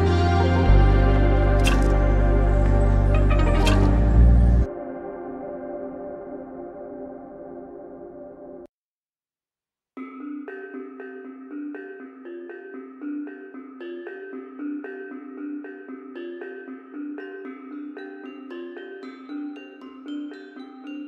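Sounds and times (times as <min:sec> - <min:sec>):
music with short even notes: 0:00.0 - 0:05.1
sustained ambient music: 0:00.0 - 0:08.7.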